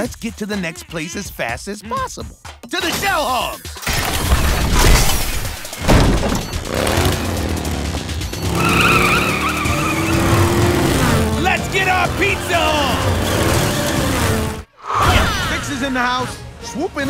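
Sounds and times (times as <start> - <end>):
cartoon motorcycle engines revving: 5.8 - 14.7.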